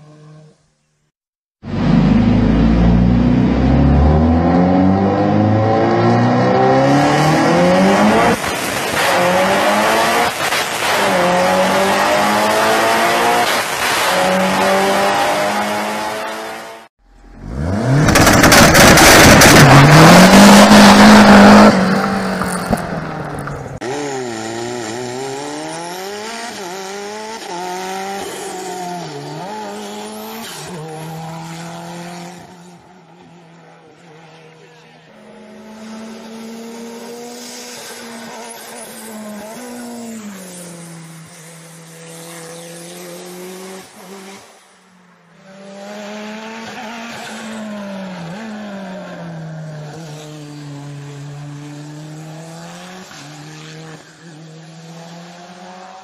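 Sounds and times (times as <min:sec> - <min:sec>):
rally car engine revving: 0:01.6 - 0:32.9.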